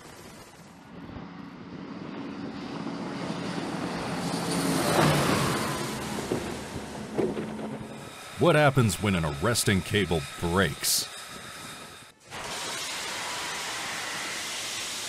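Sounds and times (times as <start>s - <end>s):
turboprop aircraft landing: 0.0s - 8.0s.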